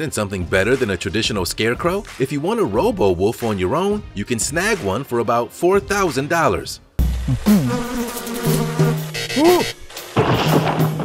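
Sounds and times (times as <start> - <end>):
fly-like buzzing: 7.0 - 10.1.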